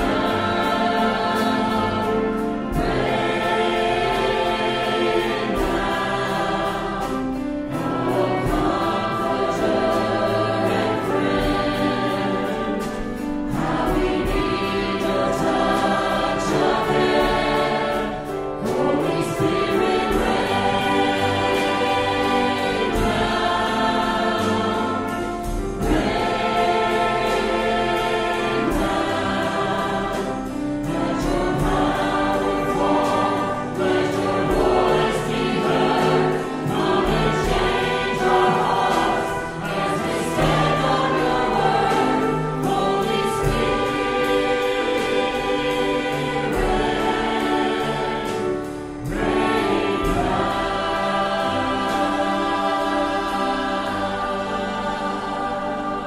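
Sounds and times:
choir singing gospel hymn: 0.0 - 56.0
instrumental accompaniment: 0.0 - 56.0.

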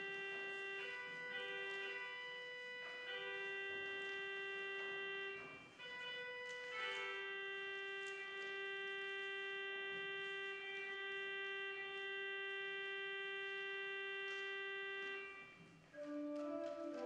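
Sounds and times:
church organ held note: 0.0 - 15.7.

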